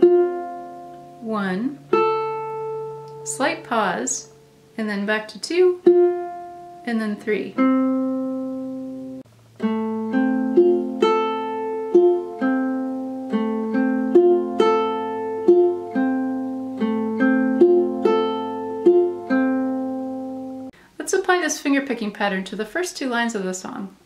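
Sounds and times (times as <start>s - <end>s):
ukulele fingerpicked: 0.0s - 1.2s, 1.8s - 3.7s, 5.6s - 20.7s.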